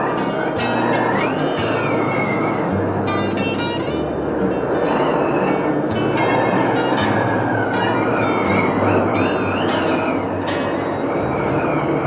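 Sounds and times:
loud steady rushing noise: 0.0s - 12.0s
plucked guitar music: 0.0s - 12.0s.

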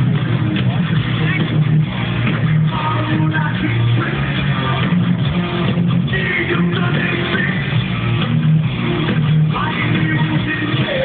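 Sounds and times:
heavy metal band playing: 0.0s - 11.0s
person singing: 2.6s - 4.9s, 6.1s - 7.8s, 9.5s - 11.0s.

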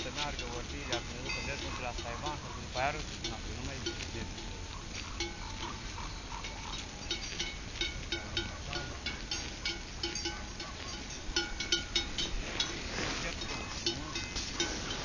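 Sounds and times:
bells clinking: 0.0s - 15.0s
sheep cropping grass: 0.0s - 15.0s.

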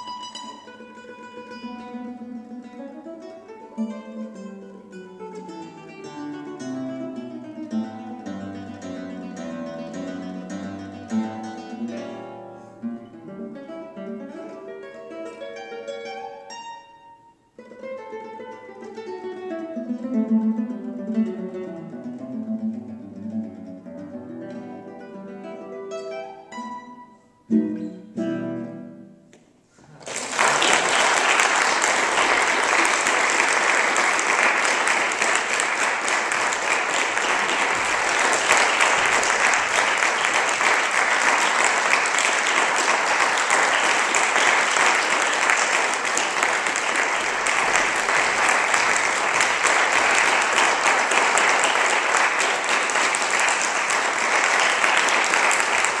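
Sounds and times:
audience applause: 29.9s - 56.0s.

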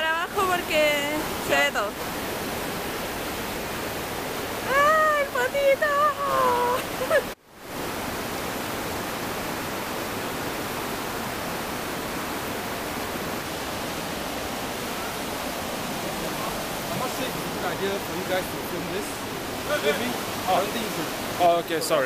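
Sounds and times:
river rushing over rocks: 0.0s - 22.0s.

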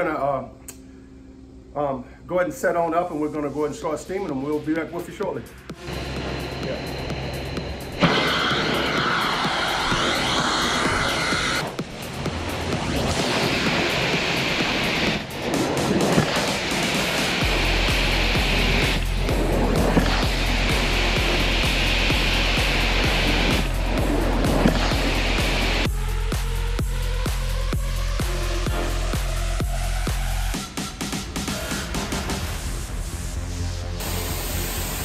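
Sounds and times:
music with steady beat: 3.5s - 35.0s
carpet extraction wand suction hiss: 4.2s - 33.0s, 33.9s - 35.0s.

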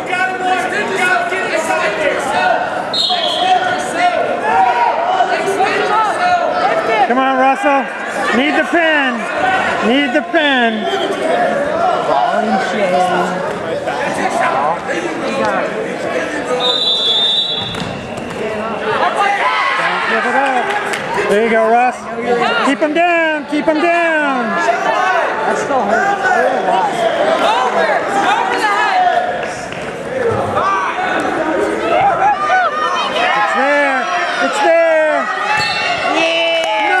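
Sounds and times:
spectators and coaches voices: 0.0s - 37.0s.

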